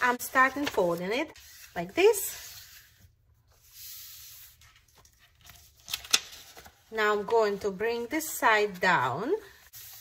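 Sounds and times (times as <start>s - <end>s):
paper rustling: 0.0s - 10.0s
paper crinkles: 4.5s - 6.9s.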